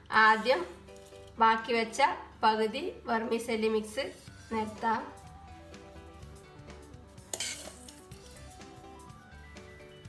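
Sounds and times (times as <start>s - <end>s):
background music: 0.0s - 10.0s
spoon scraping glass dish: 7.3s - 8.0s.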